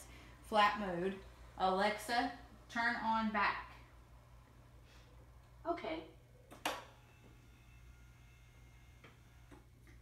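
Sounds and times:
bed motor humming: 0:00.0 - 0:10.0.

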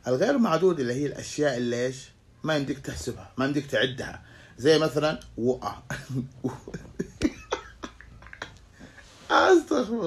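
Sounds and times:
man coughing: 0:06.4 - 0:09.0.

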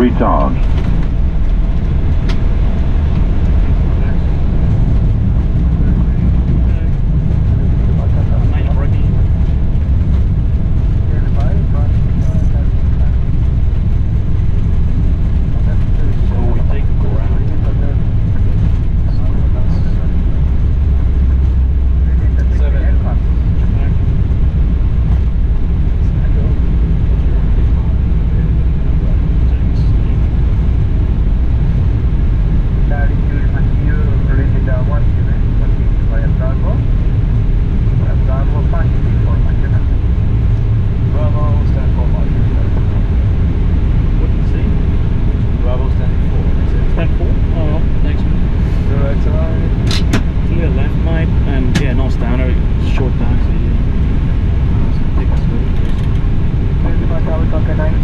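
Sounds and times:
faint voices: 0:00.0 - 0:00.8, 0:03.8 - 0:09.4, 0:11.0 - 0:13.2, 0:15.5 - 0:20.4, 0:21.9 - 0:24.0, 0:26.0 - 0:30.4, 0:32.8 - 0:36.9, 0:37.9 - 0:58.0
aircraft low rumble: 0:00.0 - 0:58.0.

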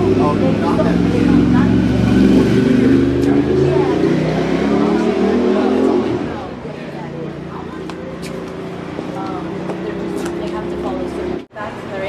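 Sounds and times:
low engine hum: 0:00.0 - 0:11.5
voices talking: 0:00.0 - 0:12.0.

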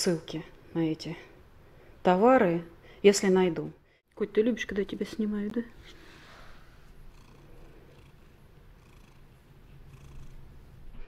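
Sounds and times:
cat purring: 0:05.8 - 0:11.0.

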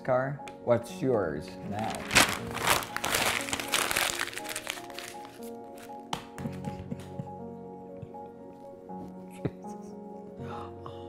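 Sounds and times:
background music: 0:00.0 - 0:11.0
paper crumpling: 0:01.7 - 0:06.1.

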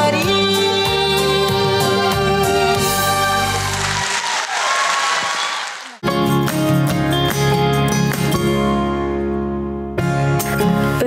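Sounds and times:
stage song accompaniment: 0:00.0 - 0:05.8
audience applause: 0:03.2 - 0:06.0
plucked guitar background music: 0:06.0 - 0:11.0.

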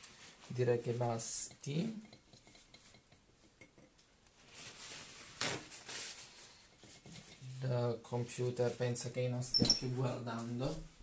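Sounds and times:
rustling: 0:00.0 - 0:01.2, 0:02.3 - 0:07.6.

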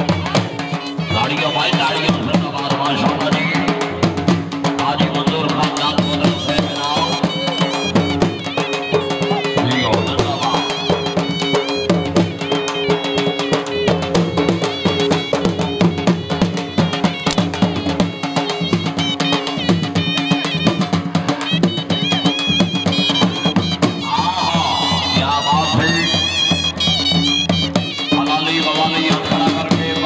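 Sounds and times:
wind instrument melody: 0:00.0 - 0:04.1, 0:04.7 - 0:30.0
fast dhol drumming: 0:00.0 - 0:30.0.

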